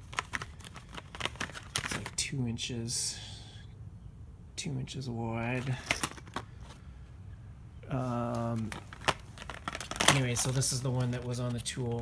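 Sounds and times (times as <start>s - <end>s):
faint plastic crackling: 0.0s - 2.2s, 7.8s - 12.0s
plastic packaging being handled: 0.0s - 2.2s, 5.6s - 6.8s, 7.9s - 12.0s.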